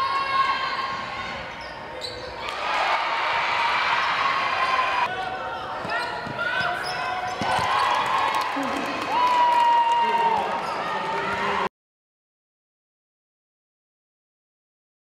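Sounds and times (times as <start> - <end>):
sneakers squeaking: 0.9 - 2.6, 4.0 - 7.8, 10.6 - 11.0.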